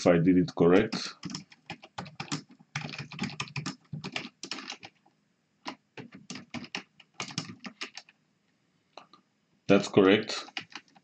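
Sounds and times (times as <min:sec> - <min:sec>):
typing on a keyboard: 0:00.8 - 0:08.2, 0:10.4 - 0:11.0.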